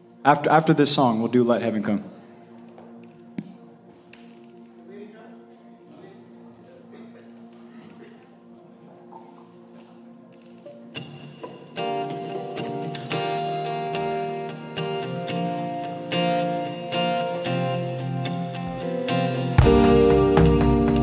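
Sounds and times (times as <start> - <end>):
guitars strumming chords: 11.0 - 21.0.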